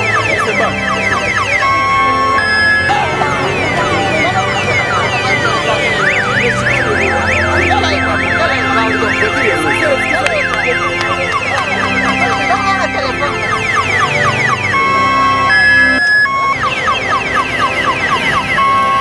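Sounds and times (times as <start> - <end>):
electronic sirens wailing: 0.0 - 19.0
music with bass line: 0.0 - 19.0
siren fast yelp: 0.0 - 19.0.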